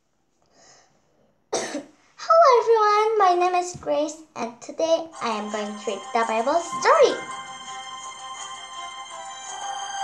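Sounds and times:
child coughing: 0:01.5 - 0:02.0
child speaking in drawn-out voice: 0:02.2 - 0:07.3.

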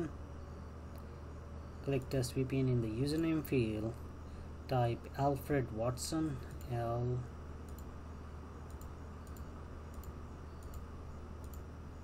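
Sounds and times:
low electrical hum: 0:00.0 - 0:12.0
computer mouse clicking: 0:07.6 - 0:07.9, 0:08.7 - 0:11.7.

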